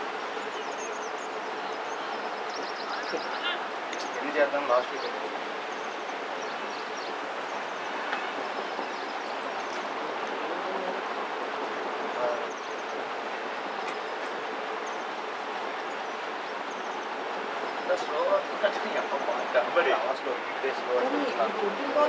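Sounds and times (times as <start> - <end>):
outdoor hiss: 0.0 - 22.0
faint distant voices: 0.3 - 14.8.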